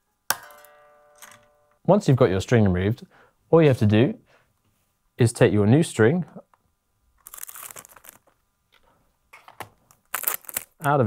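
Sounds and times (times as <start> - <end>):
packaging rustling and crinkling: 7.2 - 8.4, 9.4 - 11.0.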